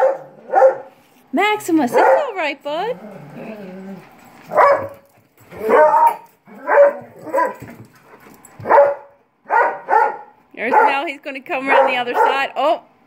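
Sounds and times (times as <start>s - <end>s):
large dog barking: 0.0s - 1.0s, 1.9s - 2.5s, 4.5s - 7.8s, 8.6s - 11.1s, 11.7s - 12.5s.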